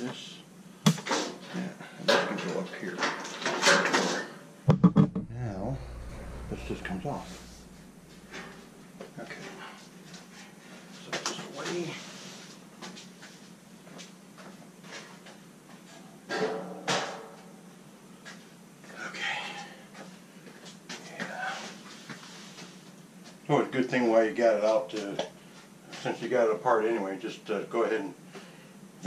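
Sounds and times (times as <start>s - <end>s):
sheet metal panel knocks and rattles: 4.7s - 5.3s.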